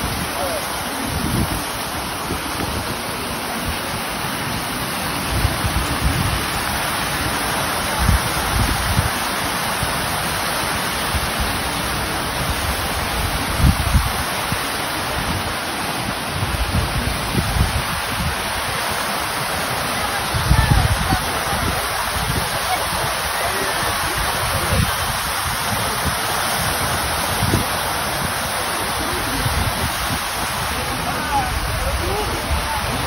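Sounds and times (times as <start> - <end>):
fountain water splashing: 0.0 - 33.0
wind gusts on microphone: 0.0 - 33.0.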